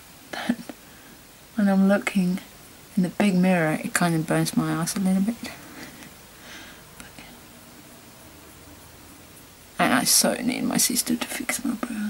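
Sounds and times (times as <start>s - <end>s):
low room hum: 0.0s - 12.0s
woman whispering: 0.3s - 0.8s, 7.0s - 7.5s, 9.8s - 12.0s.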